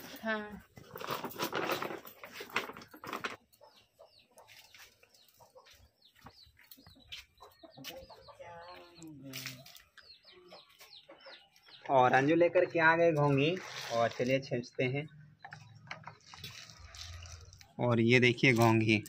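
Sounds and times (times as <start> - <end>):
chickens clucking: 2.9 - 12.4
plastic bag rustling: 16.1 - 17.8.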